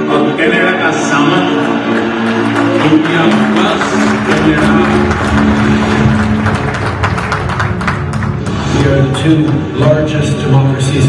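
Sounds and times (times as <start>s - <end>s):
music over sound system: 0.0s - 11.0s.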